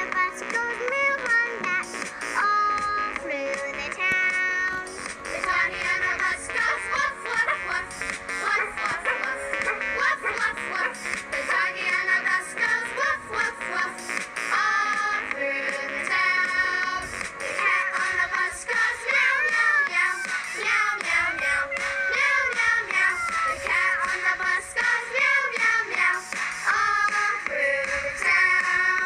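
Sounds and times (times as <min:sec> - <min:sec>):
high-pitched cartoon-like singing: 0:00.0 - 0:25.9
bright backing music: 0:00.0 - 0:29.0.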